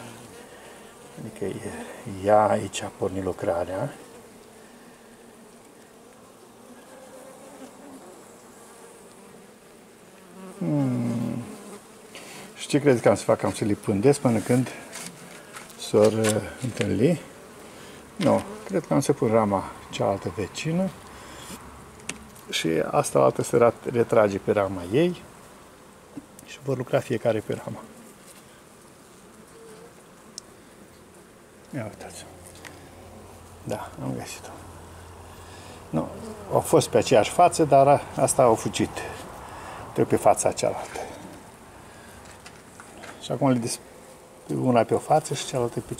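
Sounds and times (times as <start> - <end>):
honeybees buzzing: 0.0 - 45.9.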